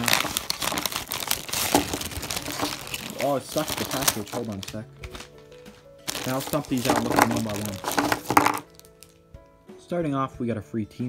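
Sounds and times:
plastic bag crinkling: 0.0s - 9.2s
paper wrapping rustling: 0.0s - 9.3s.

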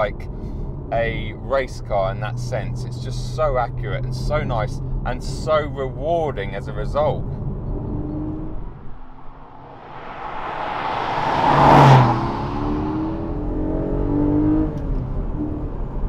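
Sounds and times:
engine revving: 7.2s - 15.7s
sports car driving past: 7.3s - 15.6s.

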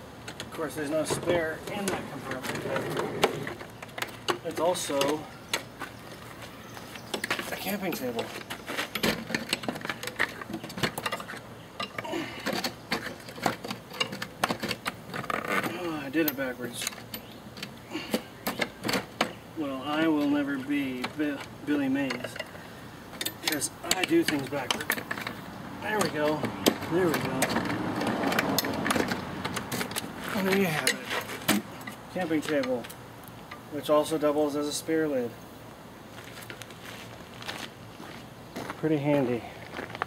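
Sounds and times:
folding table legs clicking and knocking: 0.2s - 5.7s, 23.2s - 32.0s
metal tubing clicking and rattling: 8.9s - 15.7s, 20.0s - 31.1s.

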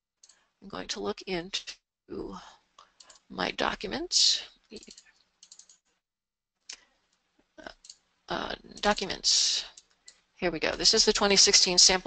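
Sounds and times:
computer clicks: 4.8s - 5.8s.

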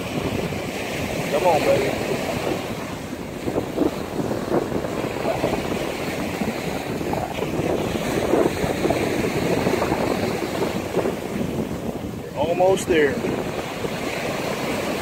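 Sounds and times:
surf washing on beach: 0.0s - 15.0s
wind buffeting microphone: 0.0s - 15.0s.

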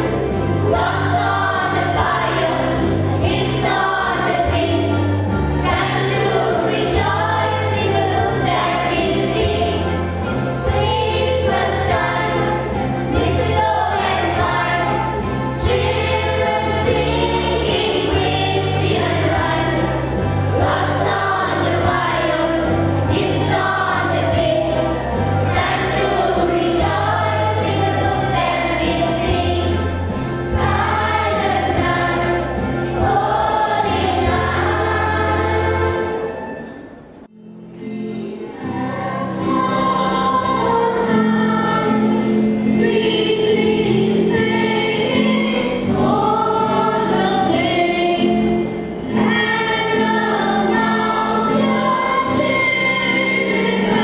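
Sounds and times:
children's choir singing: 0.0s - 54.0s
instrumental accompaniment: 0.0s - 54.0s.

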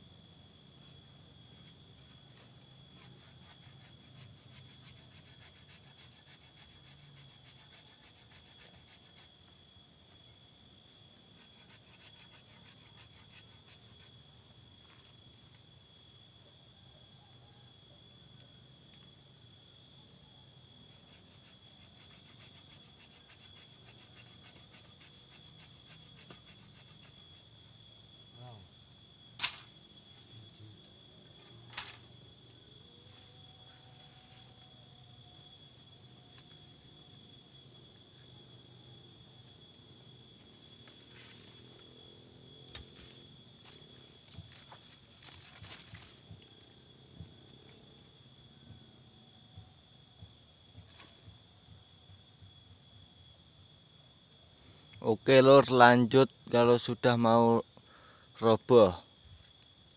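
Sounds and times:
insects chirring: 0.0s - 59.9s.

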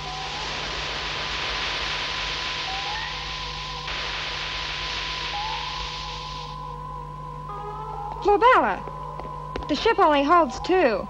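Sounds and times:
steady gas hissing: 0.0s - 7.1s
electronic drone: 0.0s - 11.0s.

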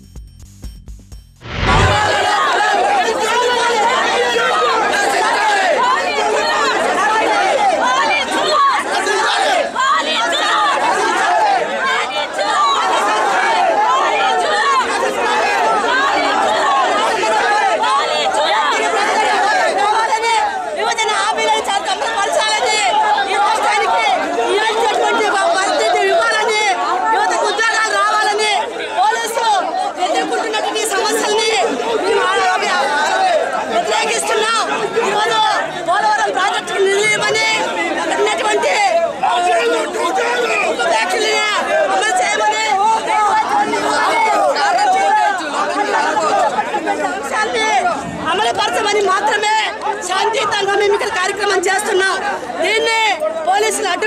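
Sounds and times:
crowd shouting and talking: 1.4s - 54.0s.

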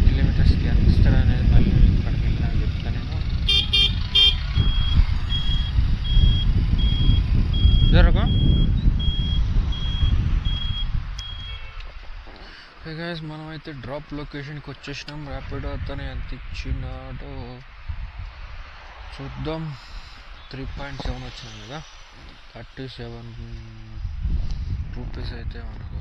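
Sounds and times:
motorcycle engine and road noise: 0.0s - 12.9s, 13.5s - 26.0s
wind rumble on microphone: 0.0s - 26.0s
turn-signal buzzer beeping: 3.5s - 11.8s.

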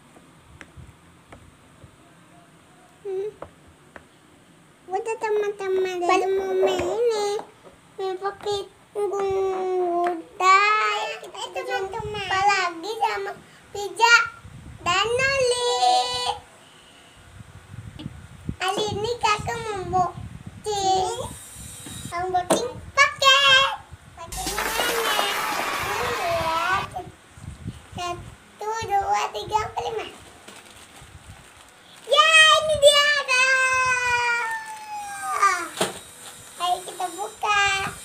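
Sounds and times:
girl squealing: 24.3s - 26.9s, 33.3s - 35.8s.

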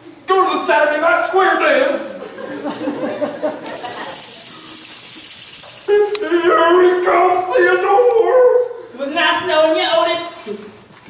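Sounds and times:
person speaking: 3.7s - 10.8s.

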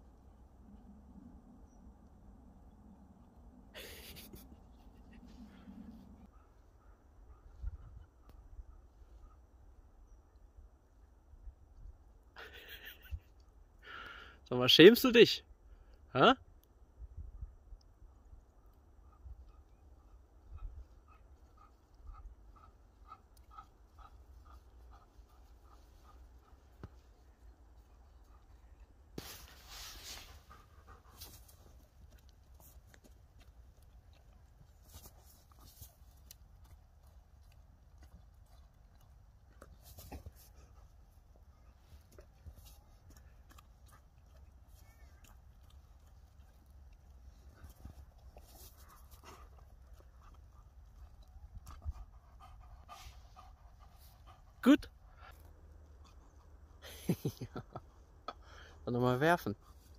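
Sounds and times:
dog panting: 19.0s - 57.0s.

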